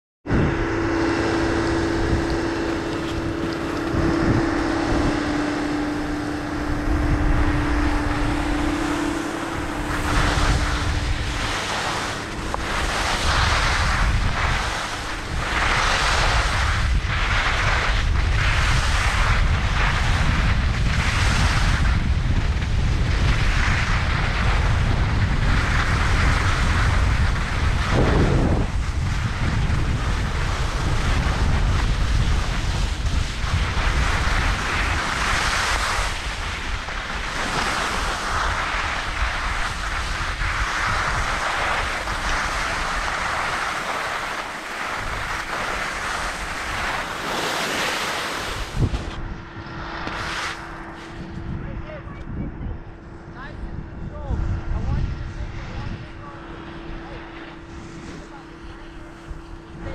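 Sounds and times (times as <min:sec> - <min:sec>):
steady low hum: 0:00.2 - 0:59.9
wind buffeting microphone: 0:00.2 - 0:59.9
ski edges scraping snow: 0:05.8 - 0:49.2, 0:50.0 - 0:51.4.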